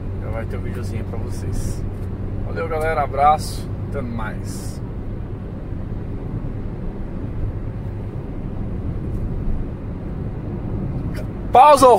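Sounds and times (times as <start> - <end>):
car cruising on highway: 0.0 - 11.9
road noise: 0.0 - 11.9.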